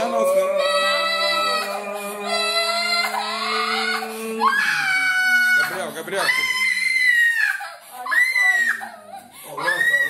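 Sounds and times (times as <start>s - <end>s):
boy crying: 0.0s - 10.0s.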